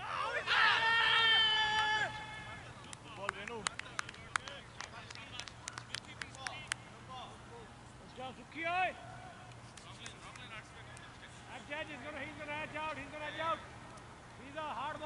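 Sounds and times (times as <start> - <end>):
players calling: 0.0 - 15.0.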